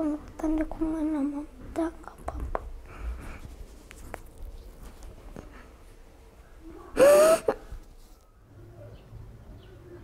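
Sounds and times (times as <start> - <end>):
child breathing: 2.8 - 3.5.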